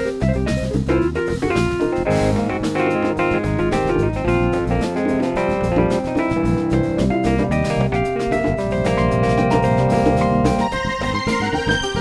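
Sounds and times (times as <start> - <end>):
drum kit beat: 0.0 - 12.0
electric bass: 0.0 - 12.0
keyboard playing chords: 0.0 - 12.0.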